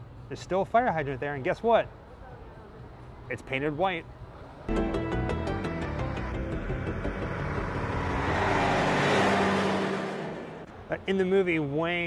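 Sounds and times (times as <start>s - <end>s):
road vehicle passing by: 5.9s - 10.7s.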